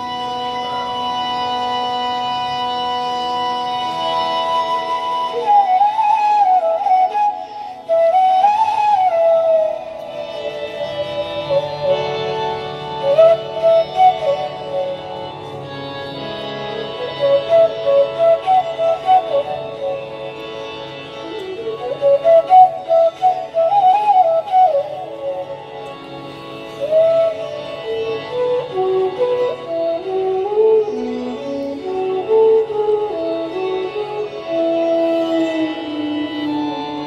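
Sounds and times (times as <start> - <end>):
solo melodic instrument: 0.0 - 37.0.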